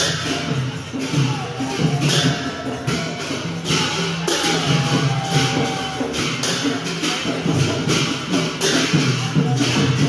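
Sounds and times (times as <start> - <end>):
barrel drum beating: 0.0 - 10.0
hand cymbals clashing: 0.0 - 10.0.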